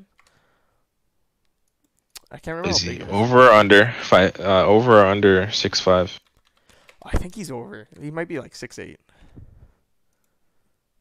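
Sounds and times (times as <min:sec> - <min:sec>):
computer keyboard clicks: 0:00.0 - 0:00.4, 0:06.2 - 0:07.1.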